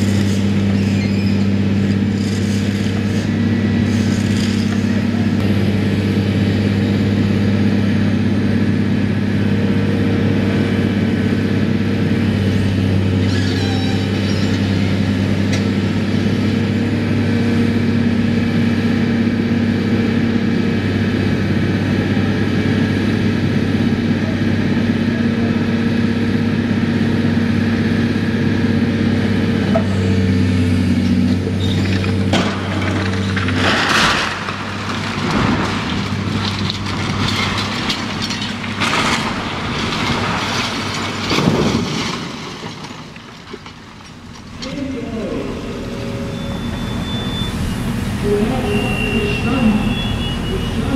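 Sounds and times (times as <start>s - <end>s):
hydraulic arm working: 0.0s - 5.6s
excavator diesel engine drone: 0.0s - 50.9s.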